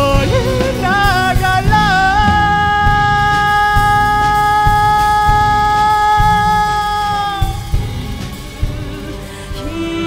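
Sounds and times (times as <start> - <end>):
man singing a long high note: 0.0 - 8.0, 9.5 - 10.0
drum hits: 0.0 - 9.8
orchestra: 0.0 - 10.0.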